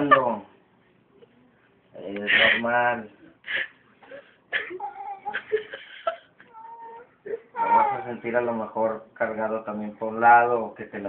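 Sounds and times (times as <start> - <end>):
woman whimpering in pain: 4.6 - 5.8, 6.5 - 8.2.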